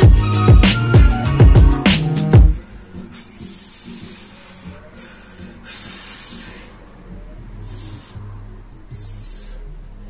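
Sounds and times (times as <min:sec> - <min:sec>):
man breathing out hard: 0:02.9 - 0:06.8.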